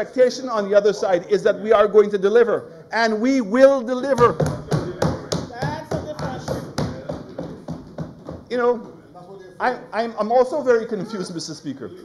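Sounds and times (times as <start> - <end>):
hands banging on wooden desks: 4.2 - 8.5.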